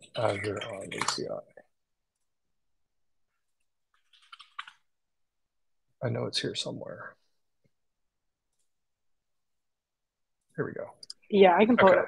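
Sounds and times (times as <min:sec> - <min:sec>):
typing on computer keyboard: 0:04.0 - 0:04.8.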